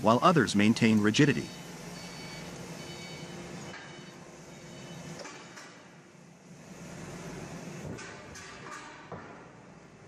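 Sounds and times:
constant hiss: 0:00.0 - 0:05.1
low machinery hum: 0:00.0 - 0:10.0.

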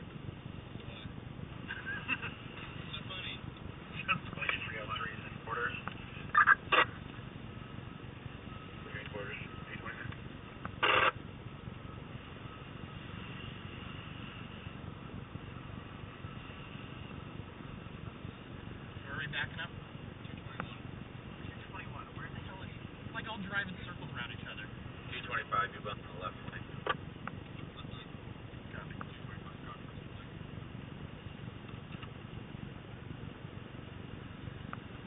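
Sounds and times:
vehicle rumble from inside cab: 0:00.0 - 0:35.0.

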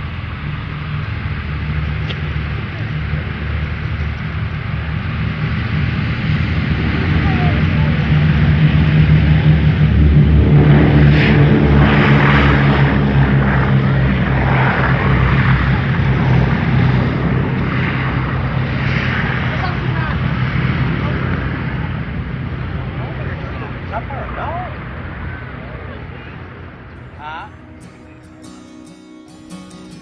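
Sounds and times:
radial aircraft engines running: 0:00.0 - 0:30.0.

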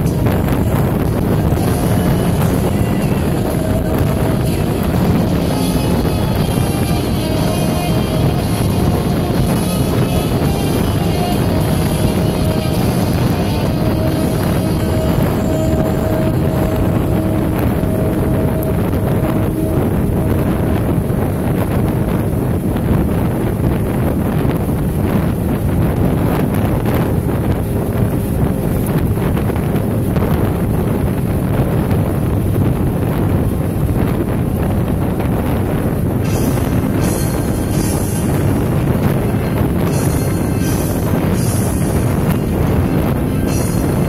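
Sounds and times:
motorcycle engine drone: 0:00.0 - 0:44.0
road noise: 0:00.0 - 0:44.0
wind rushing on microphone: 0:00.0 - 0:44.0.

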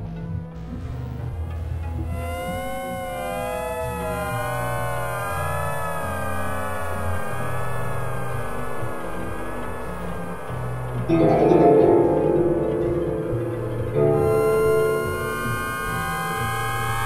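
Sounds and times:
low synthesizer drone: 0:01.2 - 0:17.0
wavering synthesizer tones: 0:02.0 - 0:17.0.

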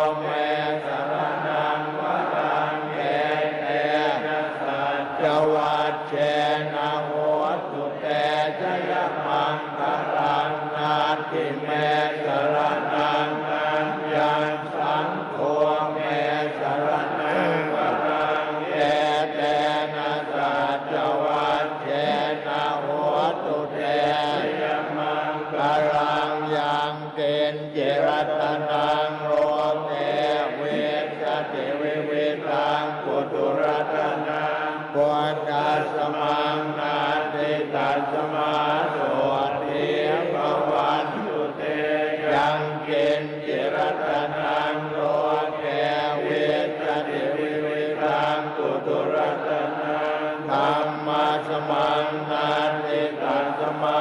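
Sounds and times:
men chanting in unison: 0:00.0 - 0:54.0.

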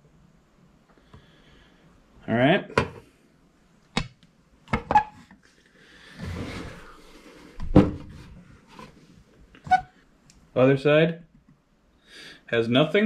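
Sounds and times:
heavy thump on desk mat: 0:07.6 - 0:08.1.

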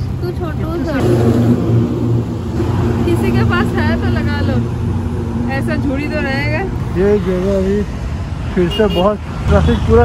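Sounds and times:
vehicle engine humming: 0:00.0 - 0:10.0
rush of noise: 0:00.6 - 0:06.9.

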